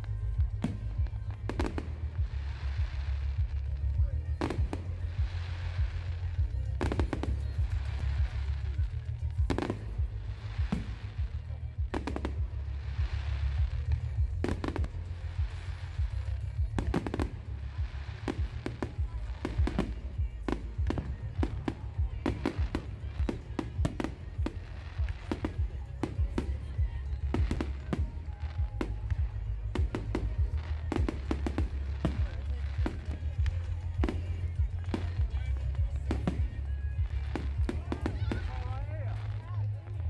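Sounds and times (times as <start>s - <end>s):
fireworks bangs and pops: 0.0s - 40.0s
steady low rumble: 0.0s - 40.0s.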